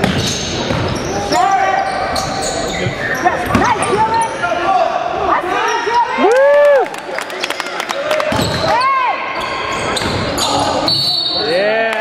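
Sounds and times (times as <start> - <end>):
sneakers squeaking: 0.0 - 5.0, 8.2 - 11.6.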